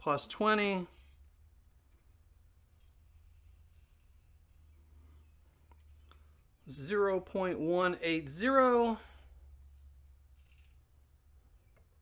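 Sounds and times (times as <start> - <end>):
low room hum: 0.0 - 12.0
small brush sweeping: 0.8 - 4.7.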